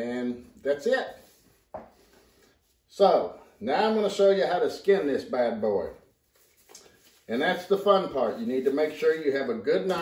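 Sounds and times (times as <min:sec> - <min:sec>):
disposable glove rustling: 0:05.6 - 0:10.0.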